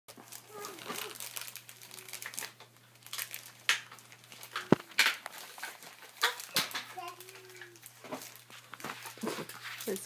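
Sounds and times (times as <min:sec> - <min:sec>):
wrapping paper crinkling: 0:00.1 - 0:10.0.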